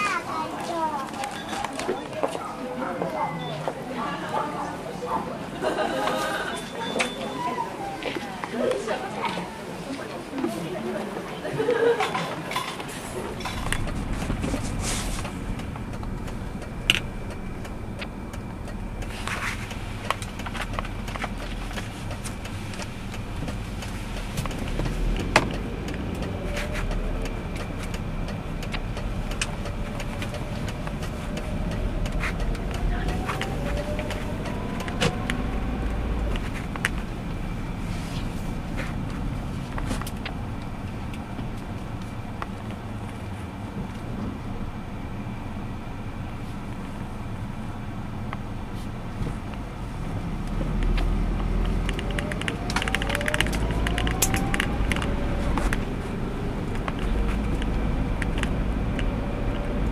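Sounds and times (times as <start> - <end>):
car engine and road noise: 0.0 - 59.9
sharp clicks: 13.6 - 37.0, 50.5 - 55.9.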